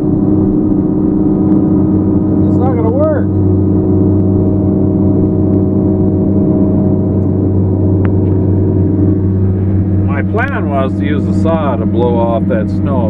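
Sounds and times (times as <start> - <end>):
machine drone: 0.0 - 13.0.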